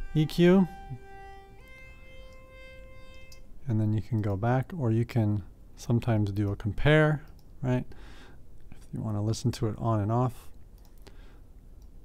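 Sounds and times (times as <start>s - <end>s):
synthesizer lead held notes: 0.0s - 3.6s.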